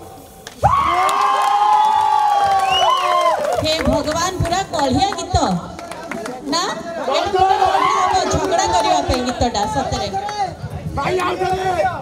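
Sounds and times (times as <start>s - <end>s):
audience cheering and whooping: 0.6s - 3.7s, 7.2s - 9.3s.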